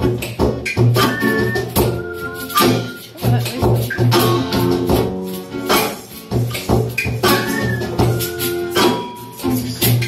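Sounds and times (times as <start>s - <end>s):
acoustic guitar: 0.0s - 10.0s
percussion hits: 0.0s - 10.0s.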